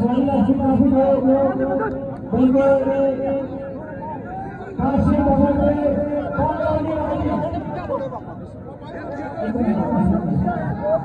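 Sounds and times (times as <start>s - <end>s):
men's voices talking: 0.0s - 11.0s.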